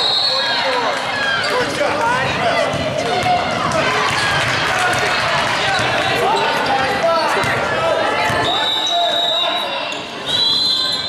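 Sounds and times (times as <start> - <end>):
voices echoing: 0.0 - 11.0
basketball bouncing on gym floor: 2.2 - 5.1.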